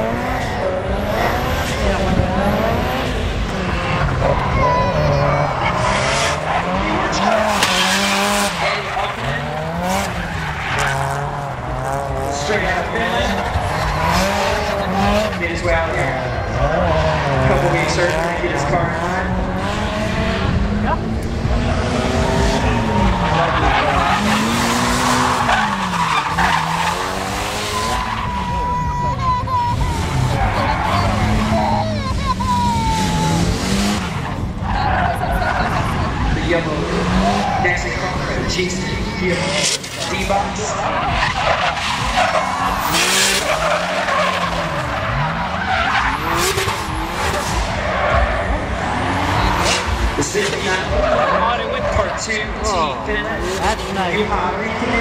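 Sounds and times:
car engine revving: 0.0 - 55.0
tyres skidding: 0.0 - 55.0
high wavering tyre squeal: 21.6 - 54.2.

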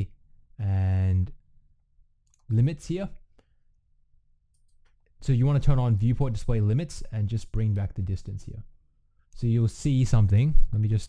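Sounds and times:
computer mouse clicks: 4.5 - 5.0.

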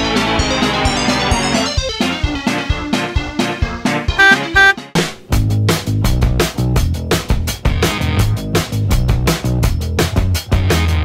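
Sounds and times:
short loud beeps: 4.2 - 4.8.

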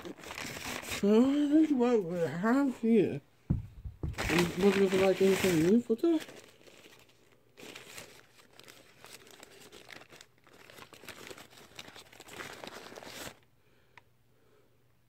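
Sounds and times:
paper bag crinkling: 0.0 - 2.9, 4.0 - 13.5.

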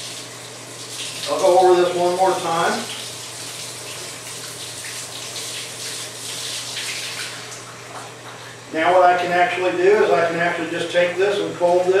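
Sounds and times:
hose water splashing into sink: 0.0 - 8.6.

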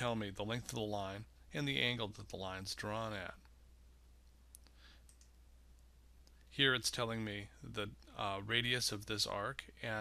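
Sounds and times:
low steady hum: 0.0 - 10.0
computer mouse clicks: 4.2 - 6.4.

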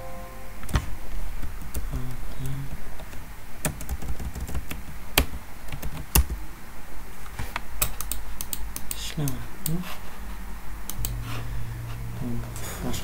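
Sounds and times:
steady low hum: 0.0 - 13.0
keyboard typing clicks: 7.8 - 9.8.

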